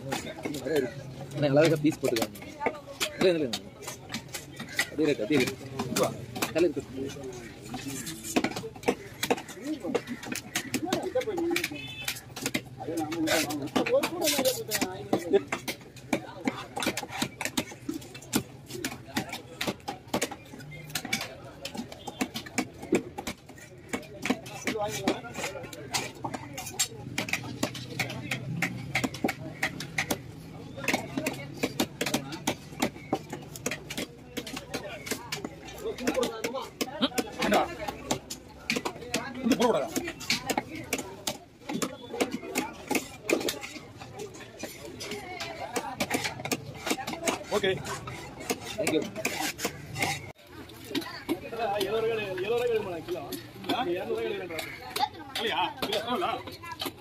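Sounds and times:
voices talking: 0.0 - 57.0
knife chopping fish on wood: 1.6 - 50.3.

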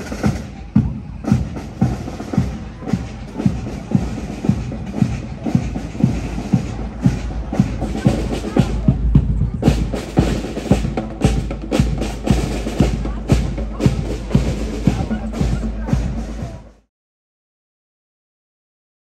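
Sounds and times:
marching band drums: 0.0 - 16.9.

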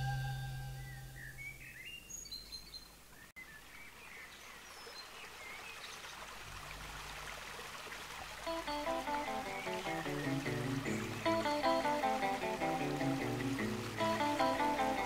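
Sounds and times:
rock song chord: 0.0 - 1.2
faint low note: 0.0 - 1.6
birds chirping: 0.0 - 6.1, 8.7 - 15.0
running water wash: 4.6 - 15.0.

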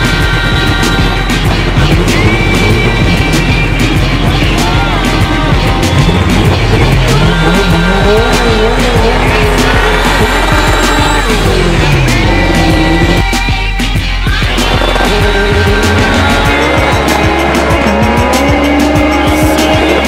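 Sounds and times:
car engine revving: 0.0 - 13.6, 14.3 - 20.0
loud background music: 0.0 - 20.0.

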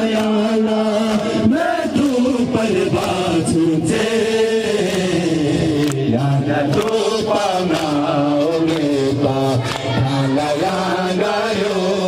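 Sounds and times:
crowd of men chanting in unison: 0.0 - 12.0
voice over a microphone: 8.0 - 11.0.

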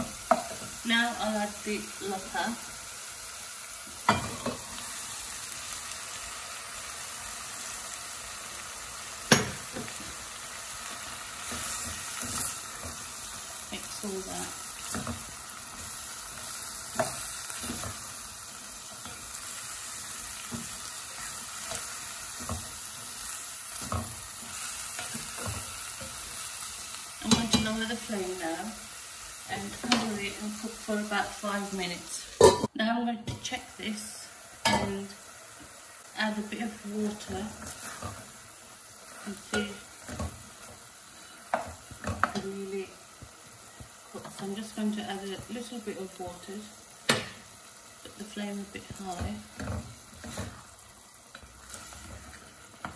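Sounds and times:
food sizzling in a pot: 0.0 - 52.9.

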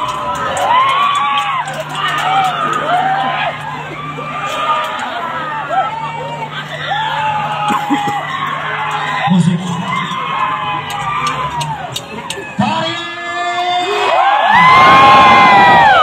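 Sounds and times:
men whooping and yelling: 0.0 - 16.0
steady low hum: 0.0 - 16.0.

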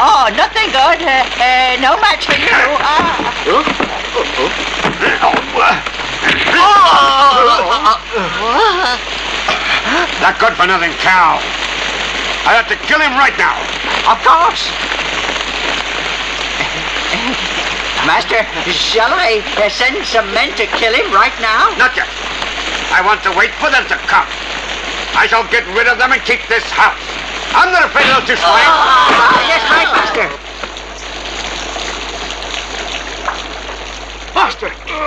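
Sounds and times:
heavy rain: 0.0 - 35.0.

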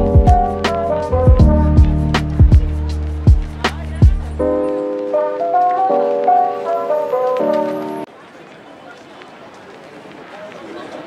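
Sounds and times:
faint distant voices: 0.0 - 11.0.

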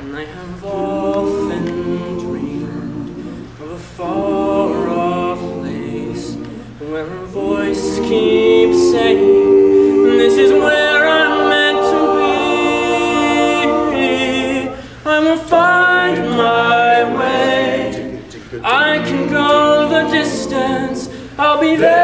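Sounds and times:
male a cappella group singing: 0.0 - 22.0.

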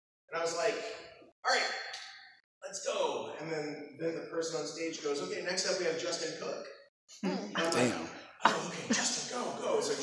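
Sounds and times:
man speaking: 2.6 - 6.7, 7.6 - 10.0.

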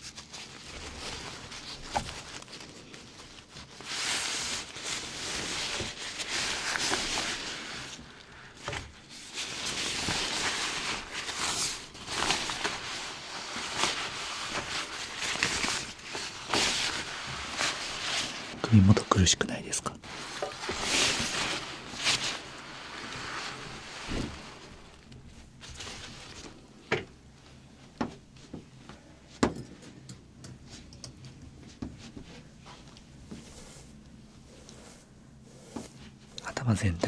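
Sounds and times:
fabric cape rustling: 0.0 - 19.2, 20.0 - 29.4, 31.5 - 36.4.

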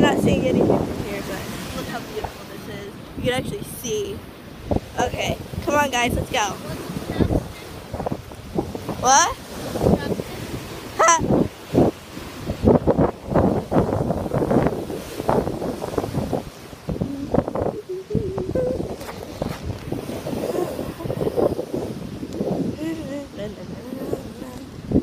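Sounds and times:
surf washing on shore: 0.0 - 25.0
wind buffeting microphone: 0.0 - 25.0
high-pitched rising cry: 17.1 - 19.0.

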